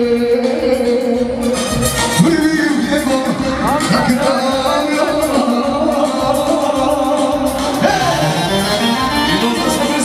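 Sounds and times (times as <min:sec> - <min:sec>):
live band dance music: 0:00.0 - 0:10.0
person singing: 0:02.2 - 0:10.0.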